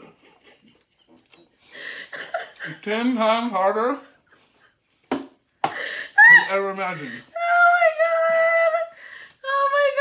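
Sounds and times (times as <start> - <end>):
person talking: 6.2 - 10.0.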